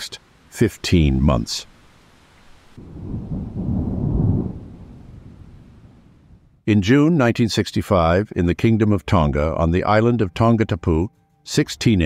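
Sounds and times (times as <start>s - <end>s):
deep rolling thunder: 2.8s - 6.6s.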